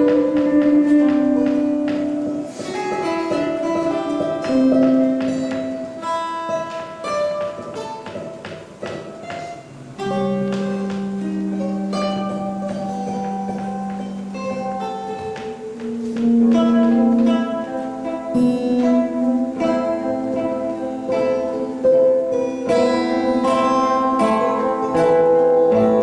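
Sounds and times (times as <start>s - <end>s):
slow ambient guitar piece: 0.0s - 26.0s.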